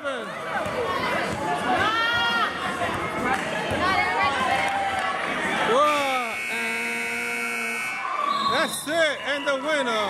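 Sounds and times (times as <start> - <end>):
scoreboard horn buzz: 5.9 - 8.2.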